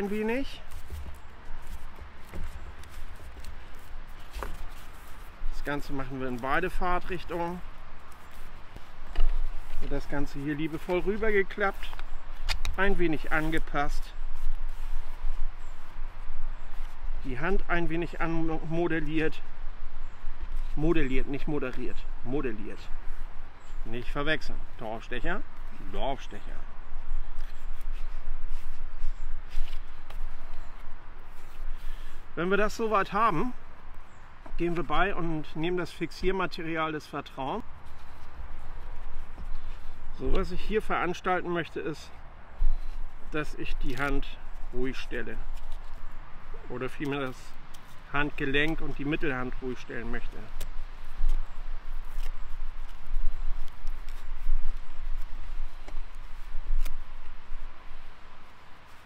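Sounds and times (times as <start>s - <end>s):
foam splint rustling: 0.0s - 17.0s
soft rustling and scuffing: 0.0s - 19.4s, 20.1s - 59.0s
hands rubbing foam padding: 50.6s - 57.0s.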